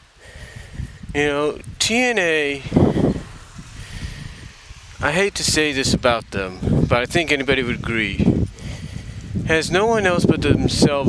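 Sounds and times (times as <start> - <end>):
bicycle tyre and road rumble: 0.0 - 11.0
wind noise on microphone: 0.2 - 11.0.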